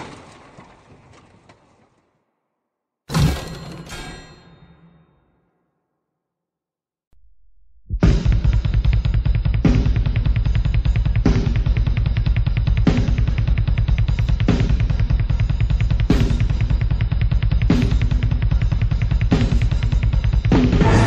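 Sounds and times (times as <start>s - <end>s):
cymbal crashes: 20.6s - 21.0s.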